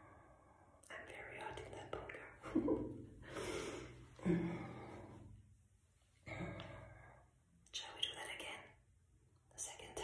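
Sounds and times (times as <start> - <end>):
woman whispering: 0.8 - 2.4, 7.7 - 8.8, 9.5 - 10.0
breaths: 3.2 - 5.4.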